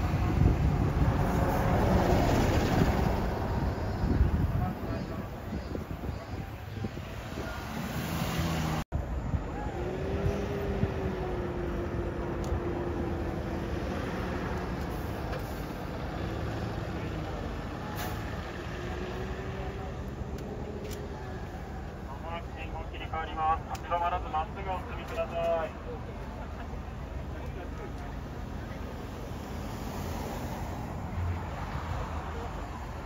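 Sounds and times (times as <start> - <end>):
diesel bus engine hum: 0.0 - 33.0
road traffic drone: 0.0 - 33.0.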